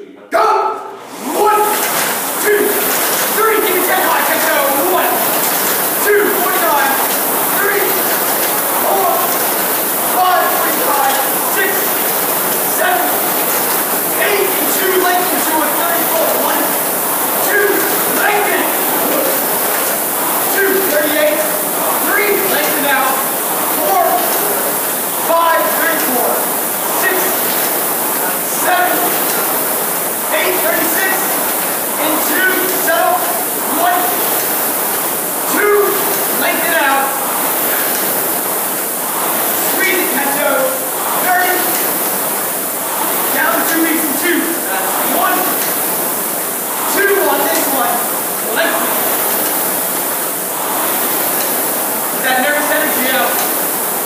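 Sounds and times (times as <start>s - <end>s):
person calling out: 0.3s - 5.2s
rowing machine flywheel whirring: 0.9s - 54.0s.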